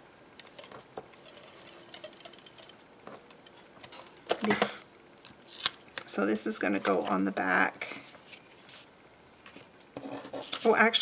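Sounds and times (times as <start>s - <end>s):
paper rustling: 8.0s - 9.7s.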